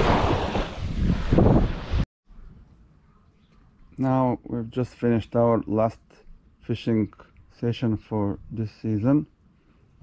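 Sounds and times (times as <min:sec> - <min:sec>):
wind buffeting microphone: 0:00.0 - 0:02.6.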